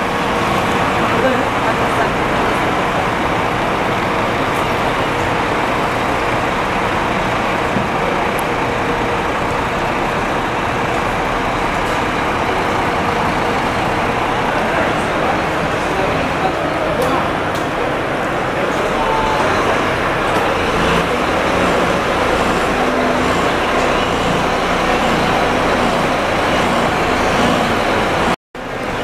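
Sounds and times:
diesel coach engine running: 0.0s - 29.0s.

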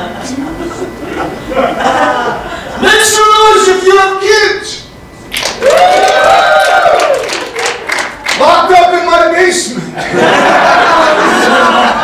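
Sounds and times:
audience clapping and cheering: 5.3s - 8.5s
person whooping: 5.6s - 7.4s.

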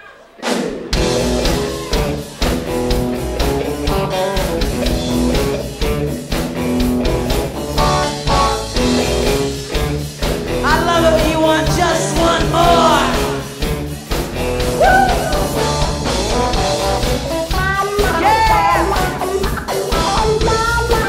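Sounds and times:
drum kit steady beat: 0.4s - 21.0s
electric bass: 1.0s - 21.0s
electric guitars: 1.0s - 21.0s.

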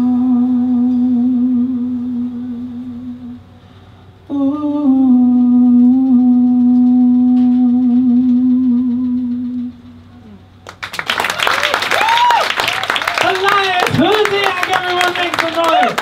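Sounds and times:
audience applause and cheering: 10.7s - 16.0s.

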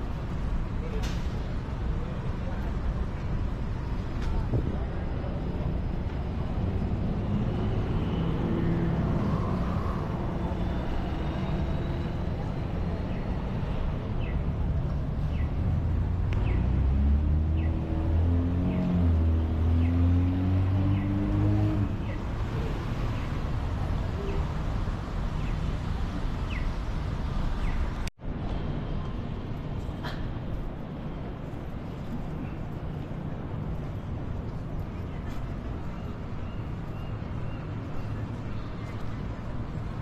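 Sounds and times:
street traffic rumble: 0.0s - 40.0s
voices of passers-by: 0.0s - 40.0s.

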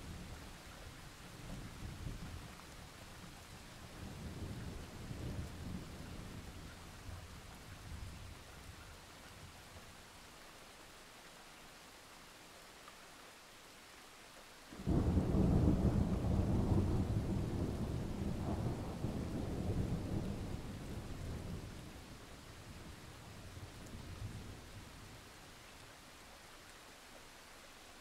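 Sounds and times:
steady rain: 0.0s - 28.0s
smaller thunder rumble: 14.8s - 21.8s.

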